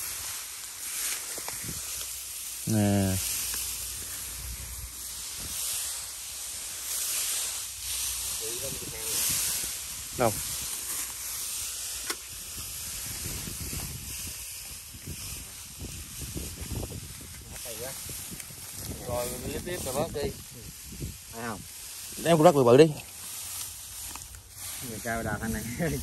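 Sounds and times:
dry stalks and grass rustling: 0:00.0 - 0:26.0.

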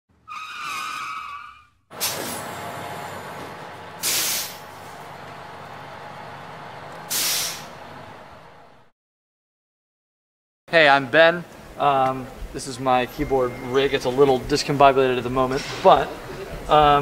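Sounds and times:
short pitched squeal: 0:00.2 - 0:02.6
air brakes hissing: 0:01.9 - 0:06.4, 0:07.0 - 0:08.6, 0:15.5 - 0:16.5
bus engine running: 0:01.9 - 0:08.9.

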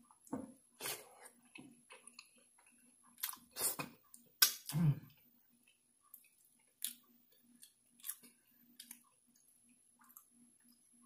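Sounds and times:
person chewing food: 0:00.0 - 0:11.0.

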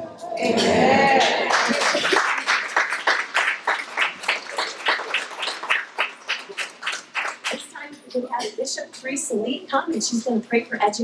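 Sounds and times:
audience applauding: 0:00.4 - 0:07.7.

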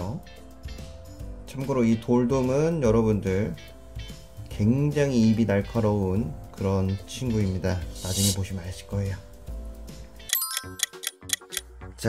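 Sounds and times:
background music: 0:00.0 - 0:12.0
clock ticking: 0:10.3 - 0:11.6.

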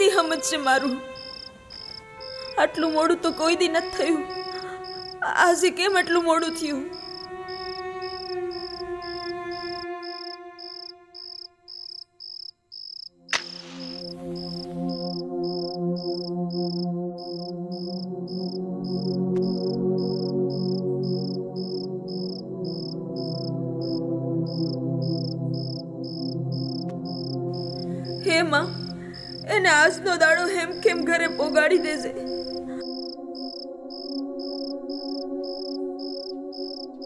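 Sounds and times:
crickets chirping: 0:00.0 - 0:37.0
drone music: 0:03.8 - 0:05.2, 0:13.3 - 0:29.5
match striking: 0:13.3 - 0:14.1.

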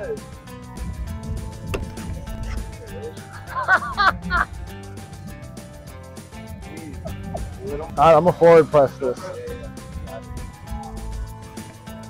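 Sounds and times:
background music: 0:00.0 - 0:12.0
golf club striking ball: 0:01.4 - 0:02.5.

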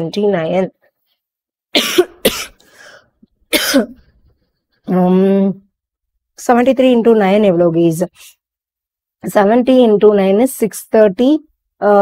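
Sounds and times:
woman clearing her throat: 0:01.8 - 0:02.6, 0:03.5 - 0:04.0
woman coughing: 0:01.8 - 0:02.6, 0:03.5 - 0:04.0.

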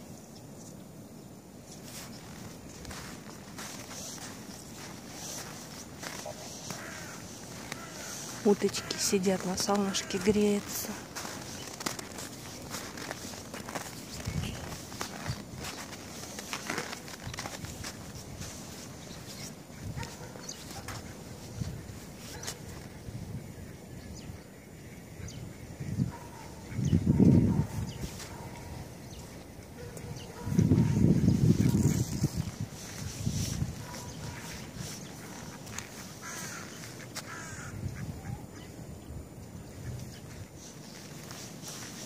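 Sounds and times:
ducks calling: 0:01.8 - 0:32.1, 0:32.8 - 0:38.8.

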